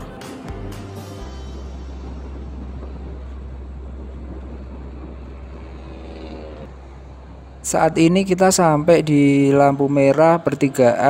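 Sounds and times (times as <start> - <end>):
motorcycle engine drone: 0.0 - 10.2
road and wind noise: 0.0 - 11.0.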